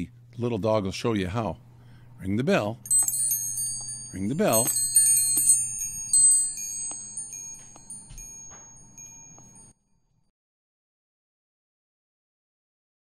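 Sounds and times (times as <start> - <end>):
door chime tubes ringing: 2.8 - 9.7.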